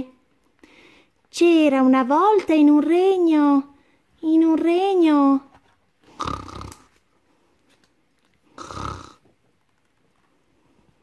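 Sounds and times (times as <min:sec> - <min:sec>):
person imitating snoring: 0:06.2 - 0:06.9, 0:08.6 - 0:09.2.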